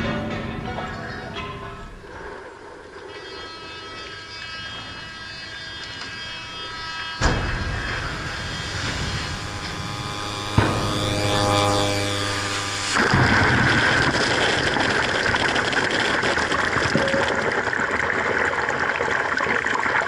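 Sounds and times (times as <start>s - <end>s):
layered steady tones: 0.0s - 13.6s
low hum: 0.0s - 18.6s
loud thump: 10.4s - 12.4s.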